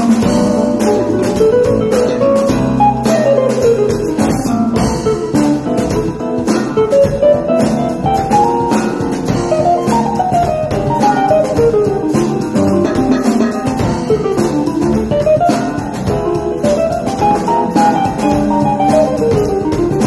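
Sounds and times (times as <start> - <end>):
bass guitar: 0.0 - 20.0
drum kit: 0.0 - 20.0.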